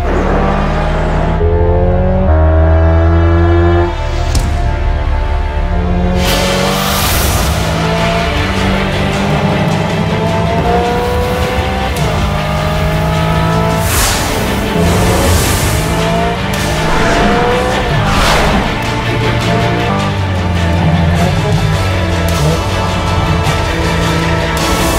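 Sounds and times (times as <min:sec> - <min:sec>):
car passing whoosh: 0:13.0 - 0:20.0.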